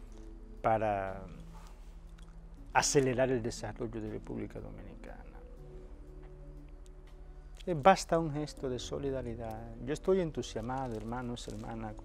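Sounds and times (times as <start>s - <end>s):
soft held low tones: 0.0s - 12.0s.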